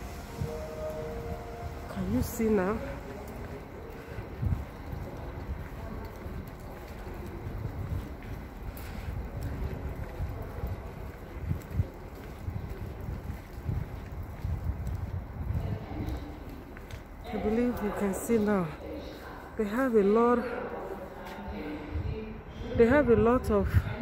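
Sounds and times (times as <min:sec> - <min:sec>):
faint background noise: 0:00.0 - 0:24.0
wind buffeting microphone: 0:00.0 - 0:24.0.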